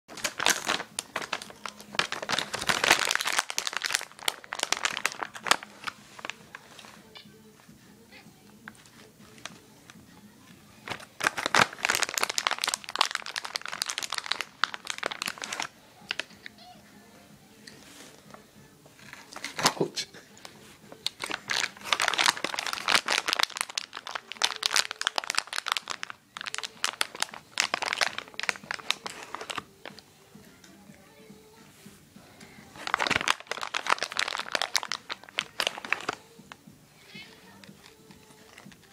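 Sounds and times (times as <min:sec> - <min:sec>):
plastic bag rustling: 0:00.1 - 0:07.1, 0:10.8 - 0:16.3, 0:20.5 - 0:30.0, 0:32.6 - 0:36.3.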